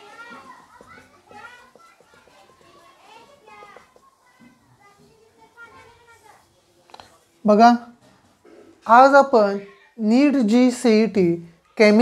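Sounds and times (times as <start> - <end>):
faint children's voices chattering: 0.0 - 12.0.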